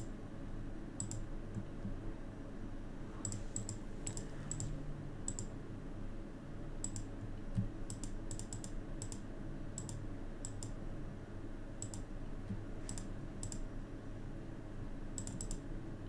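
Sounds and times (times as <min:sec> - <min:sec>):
low steady hum: 0:00.0 - 0:16.0
computer mouse clicking: 0:01.0 - 0:02.0, 0:03.2 - 0:05.5, 0:06.8 - 0:10.8, 0:11.8 - 0:13.7, 0:15.2 - 0:15.7.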